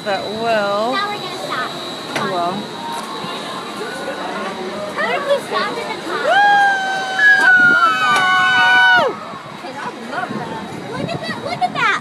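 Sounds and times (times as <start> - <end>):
riders screaming: 6.2 - 9.3.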